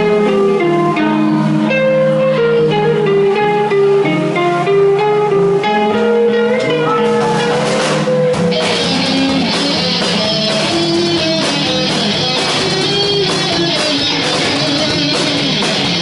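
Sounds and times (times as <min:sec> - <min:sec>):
electric guitar melody: 0:00.0 - 0:16.0.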